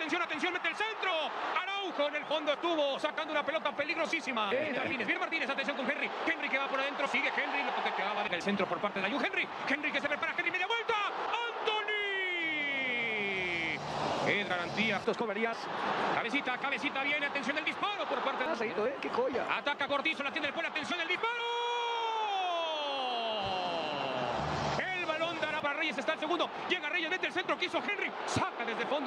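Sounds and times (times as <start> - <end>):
football commentator shouting: 0.0 - 15.2, 16.2 - 29.0.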